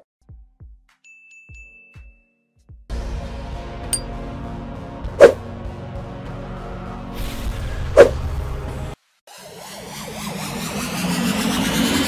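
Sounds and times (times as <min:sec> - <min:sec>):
high rising whine: 0:09.3 - 0:12.0.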